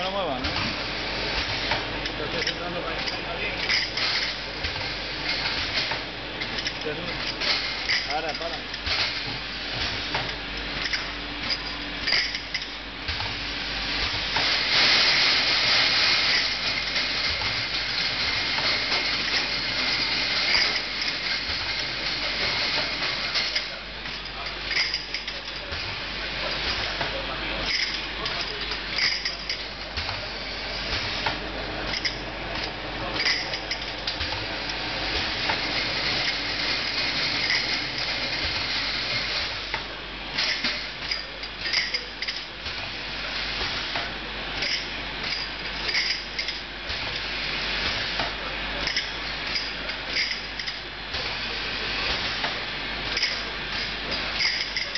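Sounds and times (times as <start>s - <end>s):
machine and conveyor noise: 0.0s - 54.9s.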